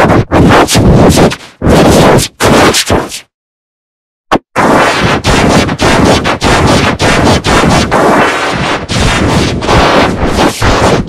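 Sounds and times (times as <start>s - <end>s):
harsh distorted noise: 0.0s - 3.3s, 4.3s - 11.0s.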